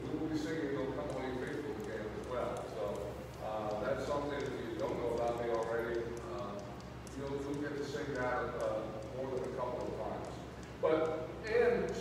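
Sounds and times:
faint light clicks: 0.3s - 12.0s.

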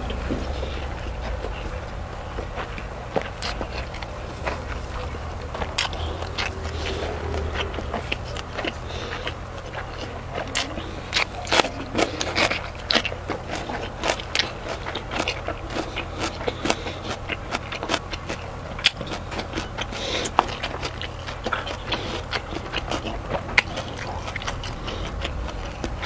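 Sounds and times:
person chewing with wet mouth sounds: 0.0s - 26.0s.

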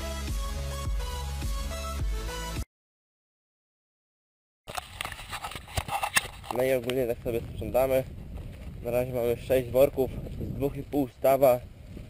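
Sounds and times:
close rustling and crackling: 4.7s - 8.8s.

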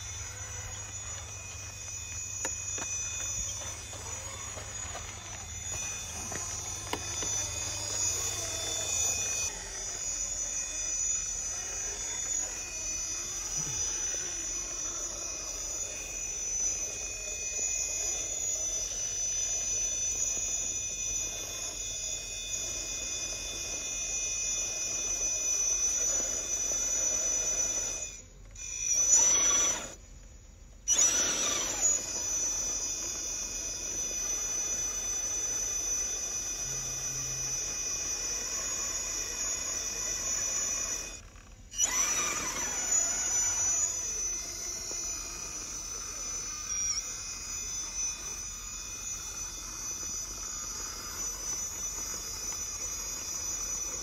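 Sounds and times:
electric motor and gears whining: 0.0s - 54.0s.

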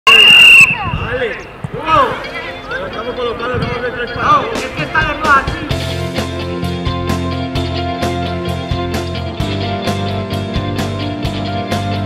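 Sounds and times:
loud high steady tone: 0.0s - 0.9s.

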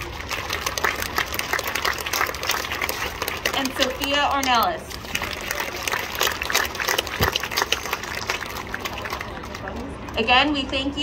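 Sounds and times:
small audience applauding: 0.0s - 10.0s.

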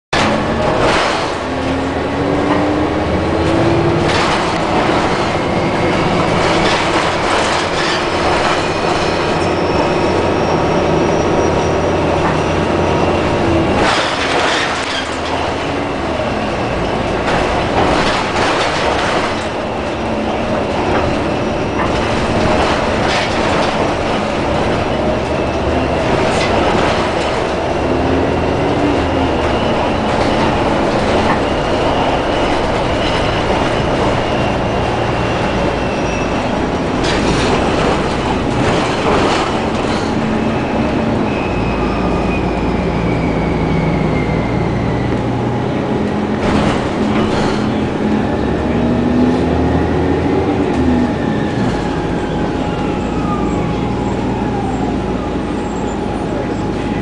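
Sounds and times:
rattles and knocks of bus body: 0.1s - 43.2s, 44.9s - 57.0s
bus drive and road noise: 0.1s - 57.0s.

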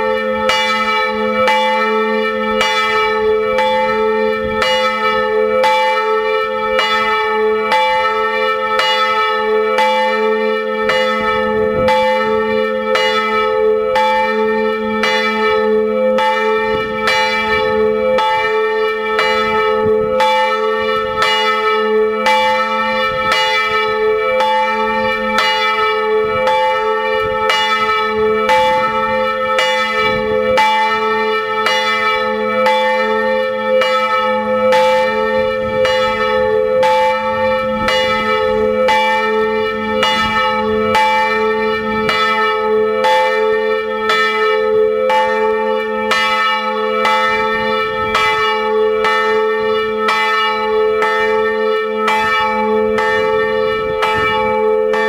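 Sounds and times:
church bell ringing: 0.0s - 55.0s.

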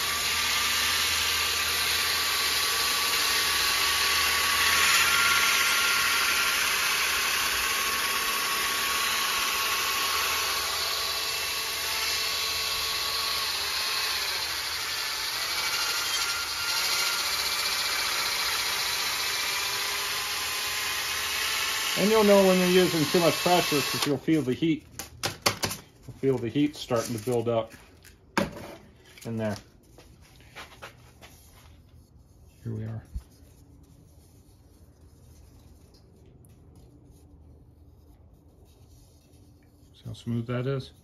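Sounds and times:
drill motor whine: 0.0s - 24.2s
sandpaper hissing on wood: 22.0s - 24.4s.

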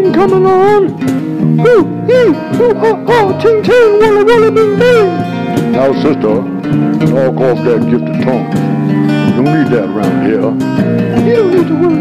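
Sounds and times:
held instrumental chords: 0.0s - 12.0s.

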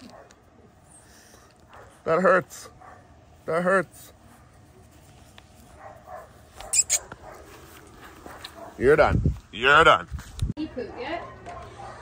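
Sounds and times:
sharp high-pitched yelp: 6.6s - 7.1s.

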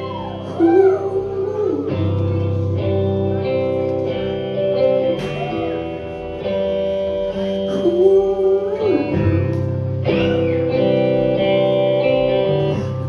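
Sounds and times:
guitar playing sustained chords: 0.0s - 13.0s.

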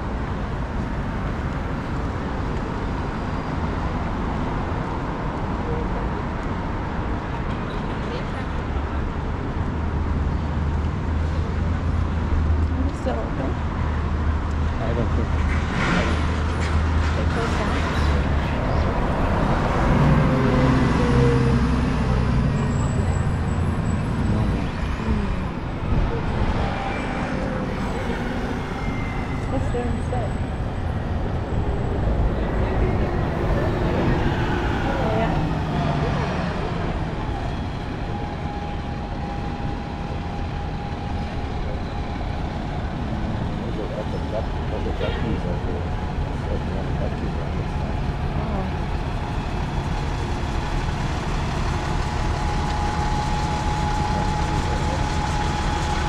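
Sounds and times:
cars and buses passing: 0.0s - 56.0s.

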